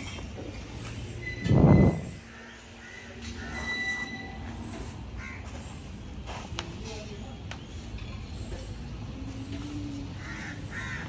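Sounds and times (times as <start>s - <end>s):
outdoor background noise: 0.0s - 11.0s
faint high calls: 0.6s - 6.0s.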